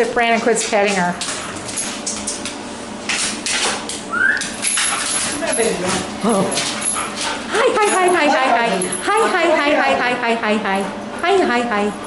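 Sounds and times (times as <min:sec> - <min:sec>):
dog scuffling on hard floor: 0:00.3 - 0:08.9.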